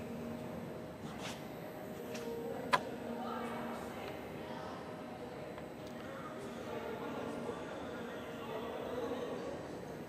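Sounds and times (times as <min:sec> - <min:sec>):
faint indistinct voices: 0:00.0 - 0:10.0.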